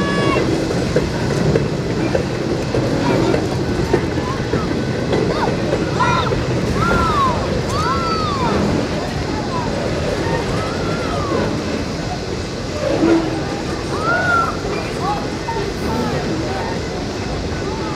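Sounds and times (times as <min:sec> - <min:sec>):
freight train wheels clattering on rails: 0:00.0 - 0:17.9.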